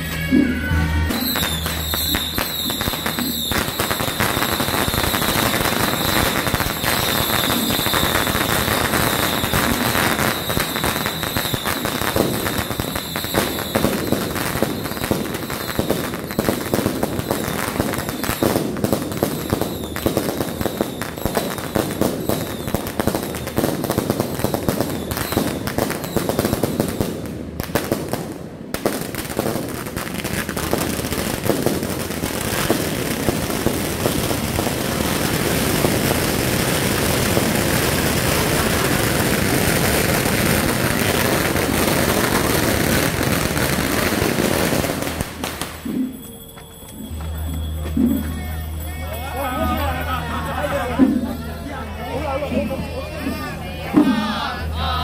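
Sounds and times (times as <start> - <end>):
firecrackers crackling: 1.1 - 52.8.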